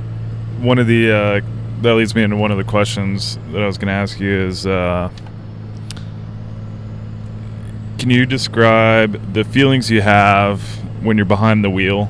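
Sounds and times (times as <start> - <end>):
car engine and road drone: 0.0 - 12.0.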